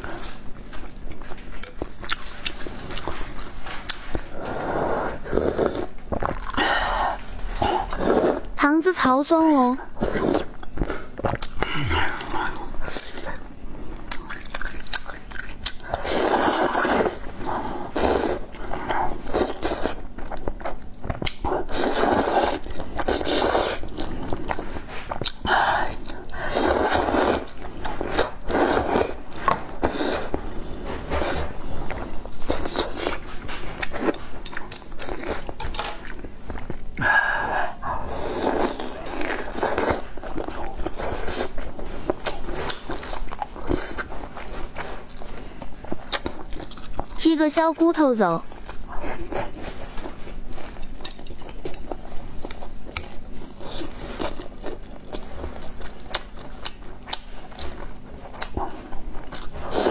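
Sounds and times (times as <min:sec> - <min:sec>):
person chewing: 0:00.0 - 0:08.6, 0:10.0 - 0:47.2, 0:48.5 - 0:59.9
person slurping noodles: 0:04.4 - 0:05.9, 0:07.7 - 0:08.5, 0:16.0 - 0:17.2, 0:17.9 - 0:18.5, 0:21.6 - 0:24.1, 0:25.8 - 0:27.5, 0:38.0 - 0:40.0.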